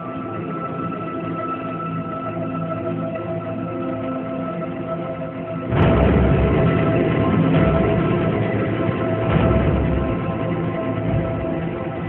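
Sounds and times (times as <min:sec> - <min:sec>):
droning synth pad: 0:00.0 - 0:12.0
low rumble: 0:05.7 - 0:12.0.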